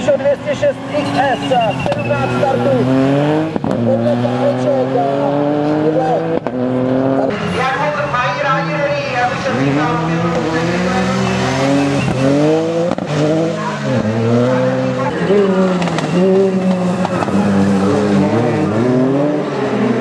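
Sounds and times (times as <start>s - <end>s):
rally car engine revving: 0.0s - 20.0s.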